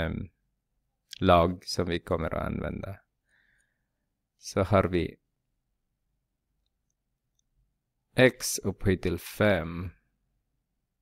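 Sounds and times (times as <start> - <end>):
person speaking: 1.0 - 3.2, 4.4 - 5.3, 8.1 - 10.1.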